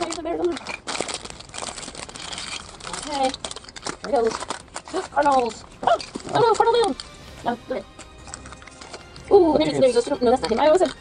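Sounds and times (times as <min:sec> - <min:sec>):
foil wrapper crinkling: 0:00.0 - 0:11.0.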